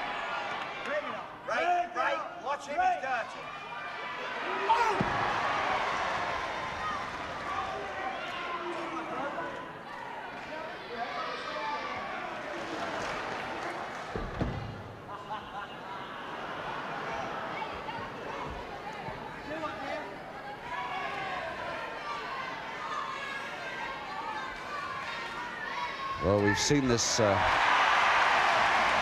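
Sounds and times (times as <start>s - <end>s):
crowd calling and shouting: 0.0s - 29.0s.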